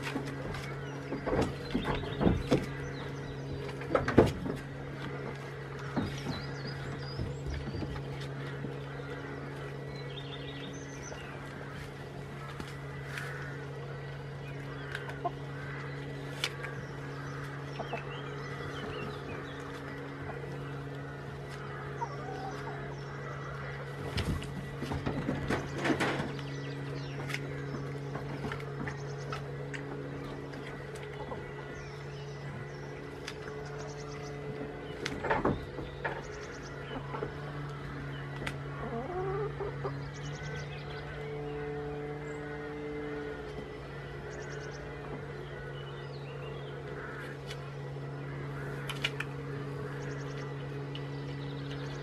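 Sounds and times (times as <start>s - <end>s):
knocks and rustles: 0.0s - 2.9s, 3.6s - 8.8s, 24.0s - 31.5s, 34.4s - 37.8s
steady low hum: 0.0s - 52.0s
chickens clucking: 21.3s - 26.4s, 33.1s - 40.4s.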